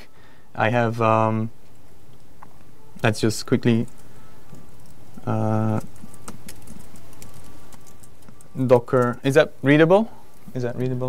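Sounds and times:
room hum: 0.0 - 11.0
laptop keyboard clicks: 5.8 - 9.2.

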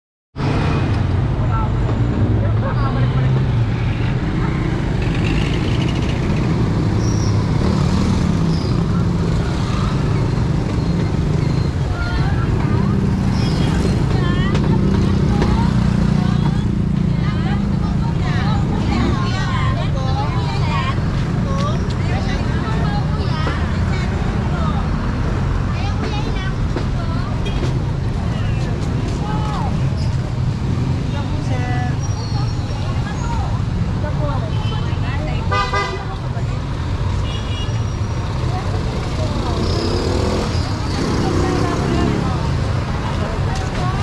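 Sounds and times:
motorcycle engines rumbling: 0.4 - 44.0
people's voices: 0.6 - 44.0.

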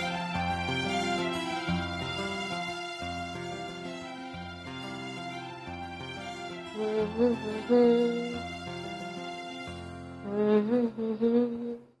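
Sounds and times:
soft background music: 0.0 - 11.9
person humming a melody: 6.8 - 8.4, 10.2 - 12.0.

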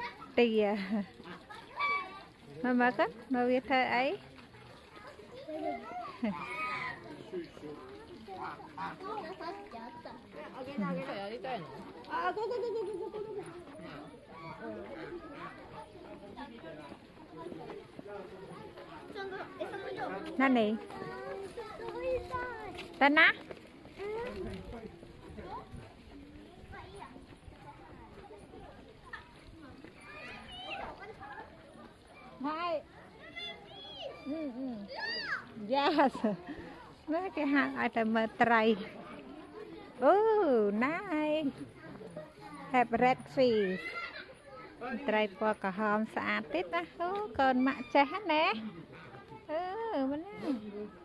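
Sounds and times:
people and children talking: 0.0 - 51.0
footsteps on paved path: 0.2 - 34.2.

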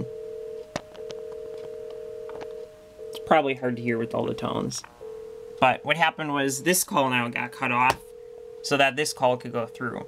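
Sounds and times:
two-tone telephone signal: 0.0 - 3.5.

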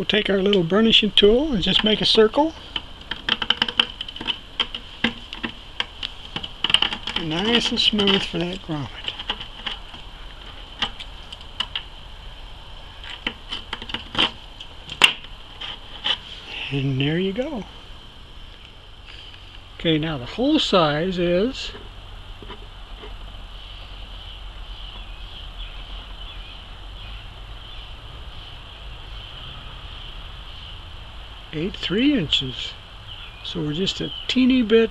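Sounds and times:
small hand tools clicking: 2.7 - 9.9.

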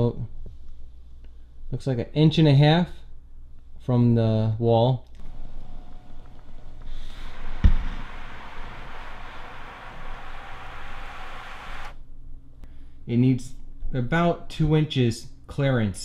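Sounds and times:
reclining chair motor running: 5.2 - 12.0.

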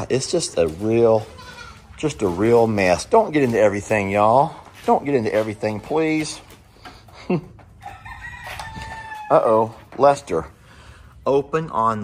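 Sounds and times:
rooster crowing: 7.8 - 9.5.

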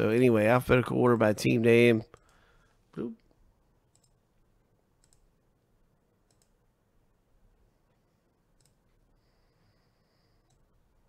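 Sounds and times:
voice: 0.0 - 2.1, 3.0 - 3.2
computer mouse clicks: 3.9 - 4.2, 5.0 - 5.3, 6.2 - 6.6, 8.5 - 9.0, 10.4 - 10.8.

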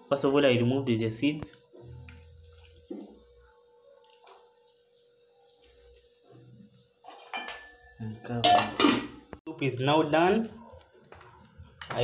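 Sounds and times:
liquid dripping into a pot: 1.4 - 3.4.

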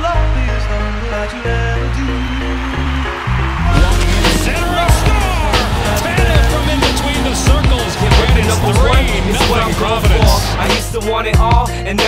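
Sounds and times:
music with heavy bass line: 0.0 - 12.0
wavering vocal layer: 3.6 - 12.0.

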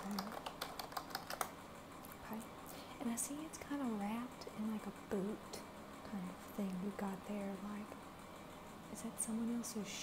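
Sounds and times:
typing on computer keyboard: 0.0 - 1.5
faint fan hiss: 0.0 - 10.0.

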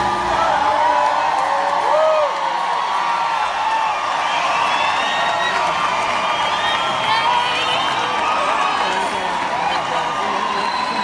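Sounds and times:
audience cheering and whooping: 0.0 - 11.0.

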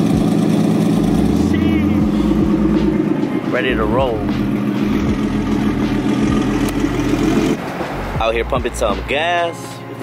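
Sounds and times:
car engine idling: 0.0 - 9.1.

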